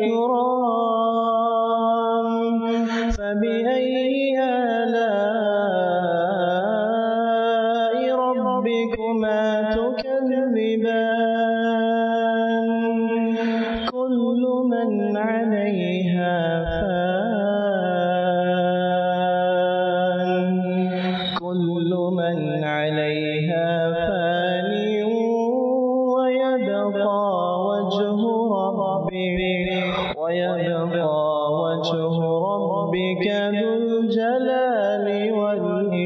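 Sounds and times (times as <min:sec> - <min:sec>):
man reciting in melodic chant: 0:00.0 - 0:36.0.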